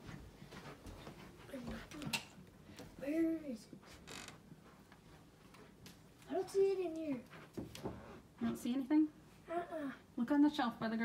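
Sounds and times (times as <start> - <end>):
door hinge creaking: 4.1 - 4.4.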